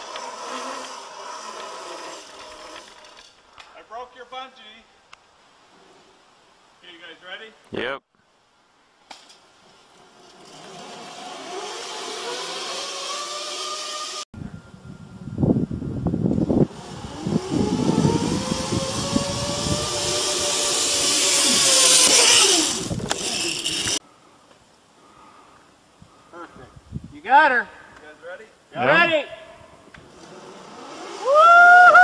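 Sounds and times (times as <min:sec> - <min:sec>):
zipline trolley pulleys whirring: 0:00.0 - 0:03.4, 0:09.6 - 0:14.2, 0:16.4 - 0:24.0, 0:30.0 - 0:32.0.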